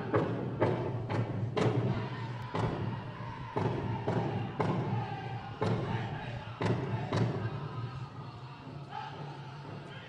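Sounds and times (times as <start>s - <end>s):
powwow drum beats: 0.0s - 8.2s
group singing: 0.0s - 10.0s.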